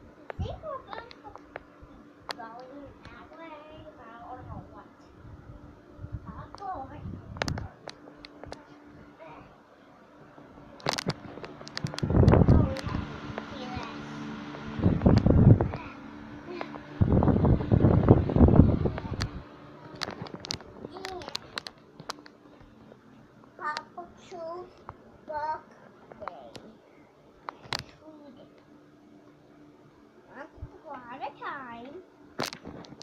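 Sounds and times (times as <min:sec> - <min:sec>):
muffled children's voices: 0:00.0 - 0:05.2, 0:11.7 - 0:14.3, 0:18.4 - 0:21.7
rumbling microphone bursts: 0:04.4 - 0:07.9, 0:10.4 - 0:21.7
microphone handling clicks: 0:06.5 - 0:08.7, 0:10.6 - 0:13.9, 0:14.5 - 0:15.8, 0:16.5 - 0:22.4, 0:32.4 - 0:33.0.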